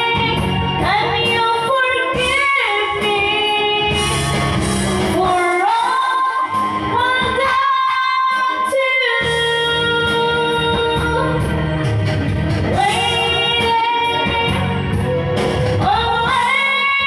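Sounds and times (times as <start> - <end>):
instrumental backing track: 0.0 - 17.0
woman singing karaoke: 0.0 - 17.0.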